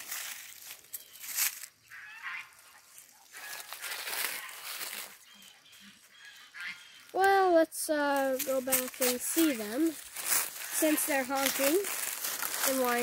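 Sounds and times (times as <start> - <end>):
footsteps in dry leaves: 0.0 - 7.2, 8.0 - 13.0
geese honking: 1.8 - 7.1.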